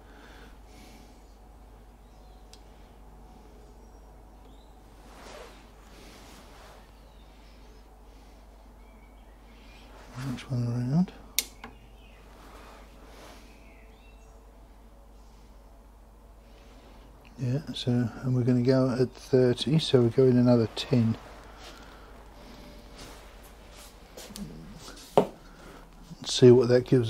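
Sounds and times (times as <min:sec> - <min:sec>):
sharp click: 0:11.4 - 0:11.8
man's voice murmuring: 0:24.2 - 0:25.0.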